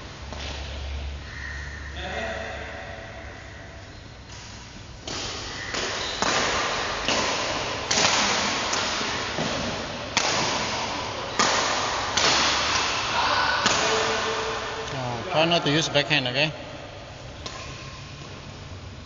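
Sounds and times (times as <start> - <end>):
rackets hitting shuttlecock: 4.2 - 14.9, 17.3 - 18.3.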